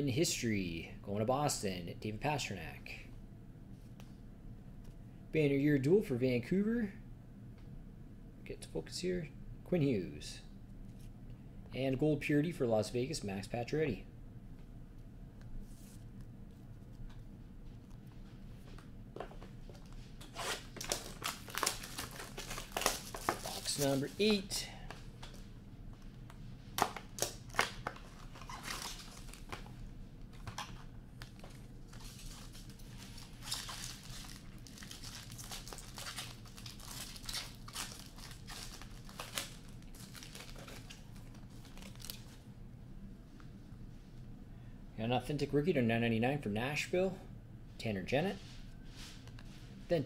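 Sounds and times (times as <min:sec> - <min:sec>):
cards and packaging rustling: 0:19.7 - 0:25.4, 0:26.8 - 0:42.4.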